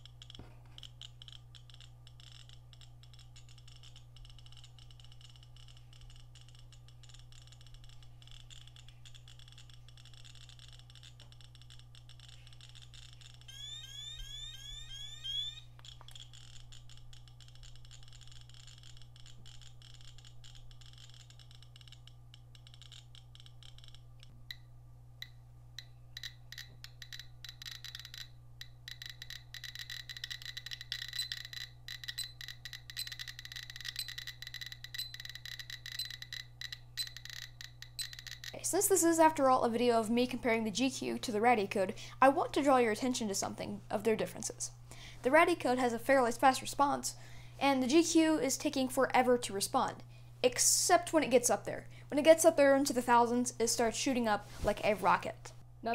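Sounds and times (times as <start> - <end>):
radiation meter clicking: 0.0 - 41.8
repeating high beep: 13.5 - 15.6.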